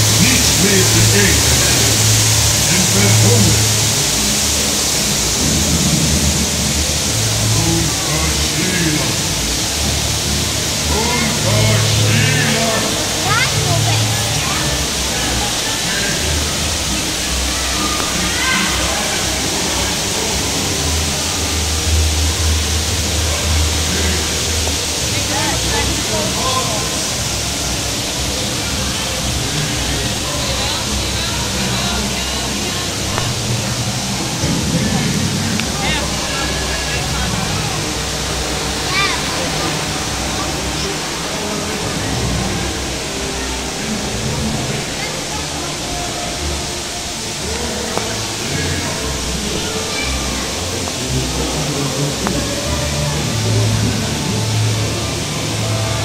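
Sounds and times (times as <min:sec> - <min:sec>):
music: 0:00.0 - 0:56.0
scattered voices: 0:00.0 - 0:56.0
steady rushing noise: 0:00.0 - 0:56.0.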